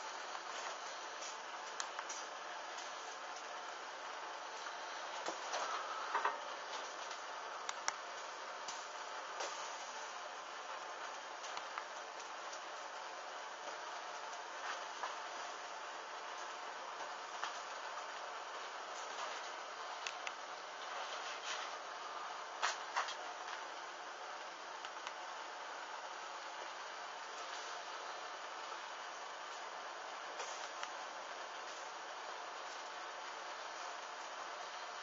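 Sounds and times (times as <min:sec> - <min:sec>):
small flames hissing: 0:00.0 - 0:35.0
crackles and pops of burning: 0:00.1 - 0:35.0.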